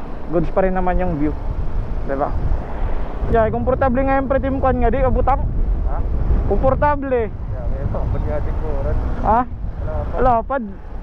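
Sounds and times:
motorcycle rumble: 0.0 - 11.0
wind buffeting microphone: 0.0 - 11.0.

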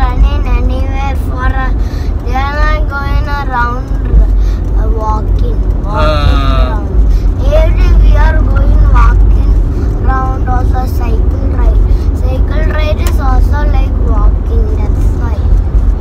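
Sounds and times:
car driving rumble inside cabin: 0.0 - 16.0
voices talking: 2.3 - 14.2.

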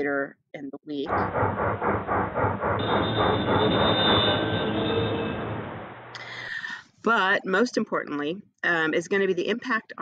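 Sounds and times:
steam locomotive chuffing: 1.1 - 6.6
steam whistle: 2.8 - 5.9.

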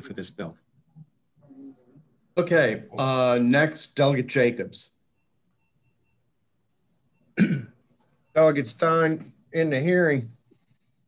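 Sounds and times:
person coughing: 7.4 - 7.8.

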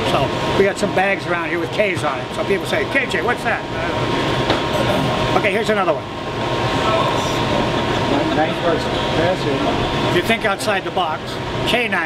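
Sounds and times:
machinery rumble and hiss: 0.0 - 12.0.

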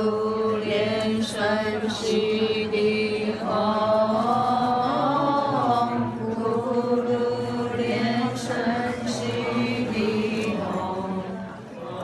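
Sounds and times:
voices chanting: 0.0 - 12.0.

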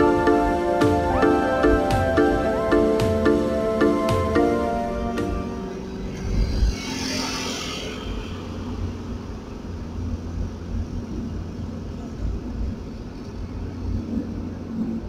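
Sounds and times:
car engine and tyre rumble: 4.6 - 15.0.

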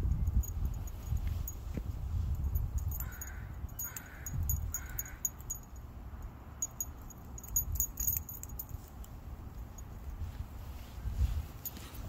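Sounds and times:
dog collar tags jingling: 0.0 - 10.2
crow cawing: 3.0 - 5.3.

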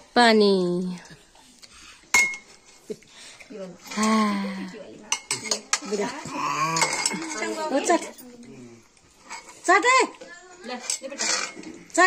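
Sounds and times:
metal utensils clinking on wok: 5.1 - 6.2, 6.8 - 8.1, 10.6 - 11.8.

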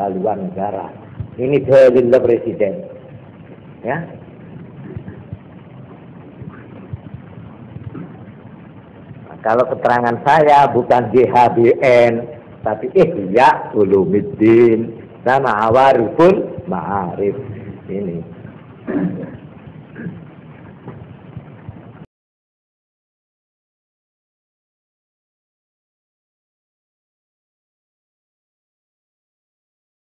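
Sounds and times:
steady hiss: 0.0 - 22.1
low rumble: 0.7 - 22.1.

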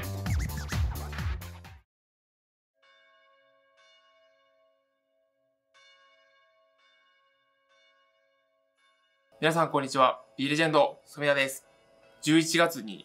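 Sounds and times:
bell chimes: 5.7 - 13.0.

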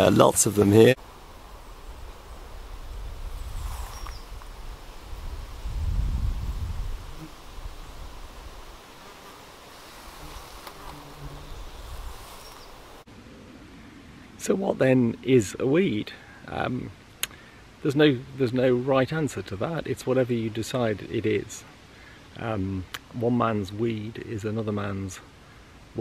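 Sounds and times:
insects buzzing: 0.0 - 13.7.

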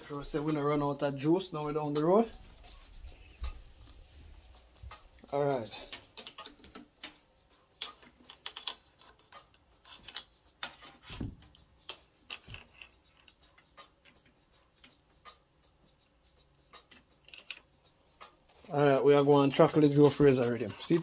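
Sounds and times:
hands handling equipment clicks: 7.8 - 10.3.

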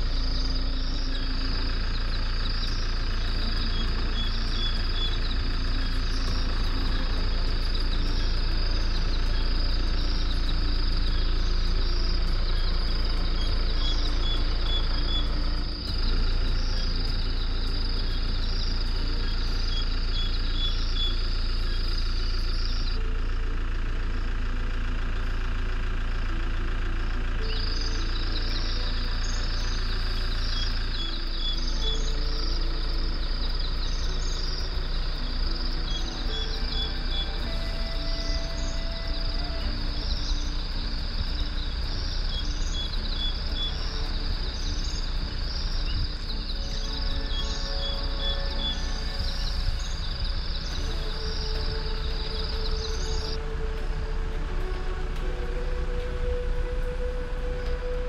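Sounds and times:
insect chorus shrilling: 0.0 - 23.0, 27.4 - 53.6
vehicle engine idling: 0.0 - 58.0.

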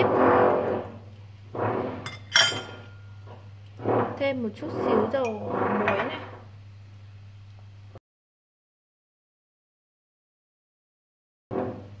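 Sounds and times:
metal spoon scraping bowl: 0.0 - 1.0, 1.6 - 6.5
spoon clinking against bowl: 2.1 - 3.2.

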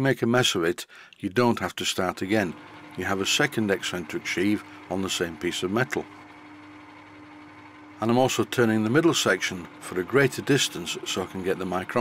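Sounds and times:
metal lathe humming: 2.0 - 12.0.

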